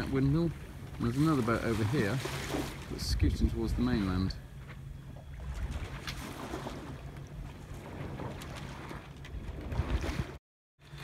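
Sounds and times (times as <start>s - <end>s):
wind buffeting microphone: 0.0s - 10.4s
water washing along hull: 0.0s - 11.0s.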